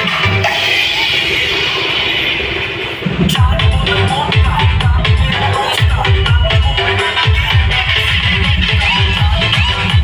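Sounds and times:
loud dj music: 0:00.0 - 0:10.0.

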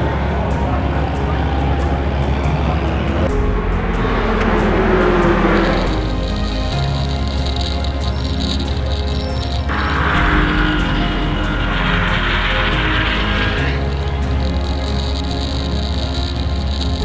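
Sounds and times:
race cars passing at speed: 0:00.0 - 0:08.9
music with steady beat: 0:00.0 - 0:17.0
racing car engine at high speed: 0:00.0 - 0:17.0.

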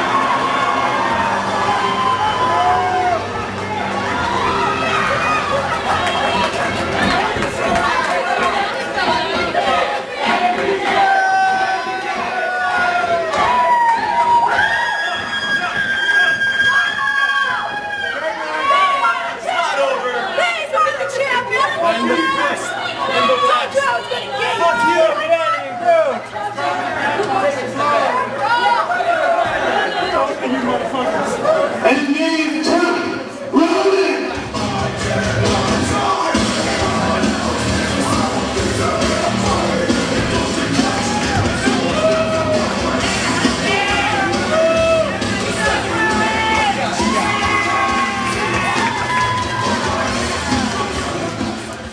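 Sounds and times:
music playing: 0:00.0 - 0:16.9, 0:33.6 - 0:51.9
audience cheering and shouting: 0:00.0 - 0:51.9
spectators talking and calling out: 0:00.0 - 0:51.9.

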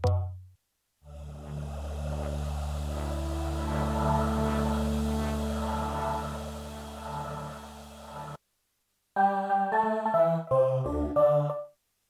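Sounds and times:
steady low drone: 0:01.0 - 0:08.4
synthesizer vocal chord: 0:01.0 - 0:08.4.

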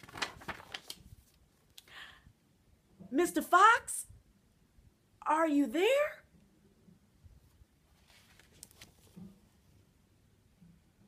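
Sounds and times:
paper rustling and crackling: 0:00.0 - 0:01.4, 0:07.9 - 0:09.4.

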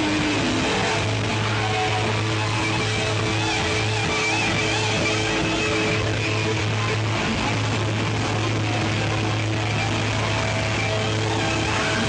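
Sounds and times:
distorted hard rock band playing: 0:00.0 - 0:12.0.

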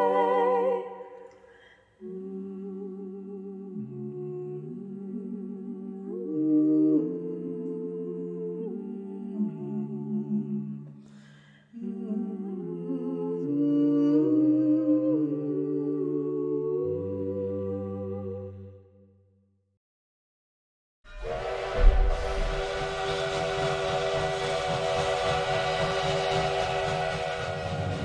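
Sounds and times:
a cappella group singing chords: 0:00.0 - 0:19.2, 0:21.1 - 0:28.0.

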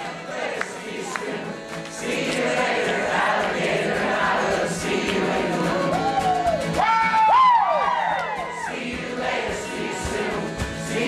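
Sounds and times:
crowd singing along: 0:00.0 - 0:06.7, 0:07.8 - 0:11.0
acoustic band with accordion: 0:00.0 - 0:11.0.

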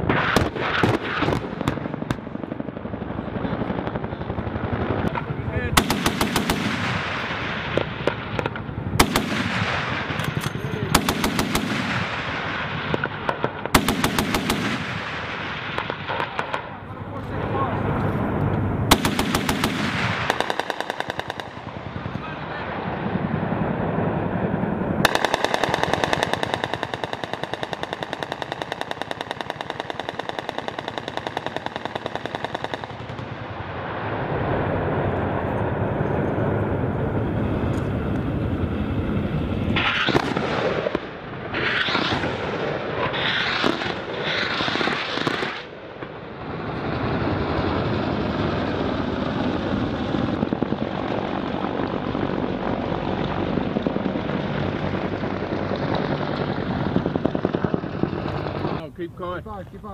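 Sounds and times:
aircraft rumble: 0:00.0 - 0:59.9
short sharp gunfire bursts: 0:05.7 - 0:10.2, 0:10.8 - 0:16.7, 0:18.9 - 0:21.8, 0:25.1 - 0:33.4.

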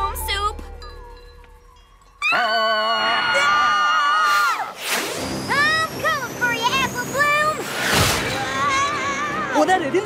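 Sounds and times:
cartoon scream: 0:02.2 - 0:04.8.

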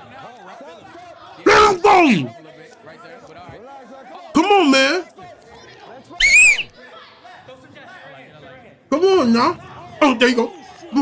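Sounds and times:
faint crowd chatter: 0:00.0 - 0:11.0
man's high-pitched falsetto squeal: 0:06.2 - 0:06.7.

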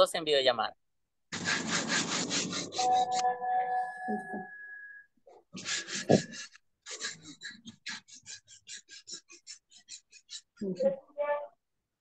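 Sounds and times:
fingers rubbing phone microphone: 0:01.3 - 0:03.3
steady multi-pitch tone: 0:02.8 - 0:05.2.

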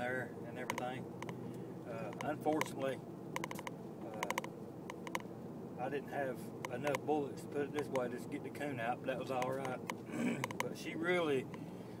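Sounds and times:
engine and road hum in cabin: 0:00.0 - 0:12.0
sharp ringing ticks: 0:00.6 - 0:05.3, 0:06.6 - 0:07.1, 0:07.7 - 0:08.1, 0:09.3 - 0:10.8.

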